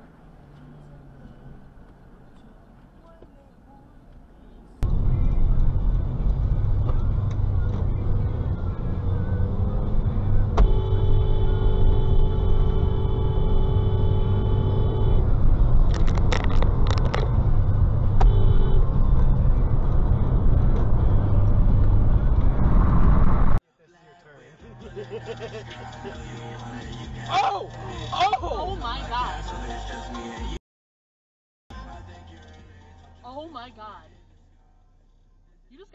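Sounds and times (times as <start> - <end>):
car road and engine rumble: 0.0 - 23.6, 31.8 - 35.9
car horn blast: 10.6 - 15.3, 18.2 - 19.0.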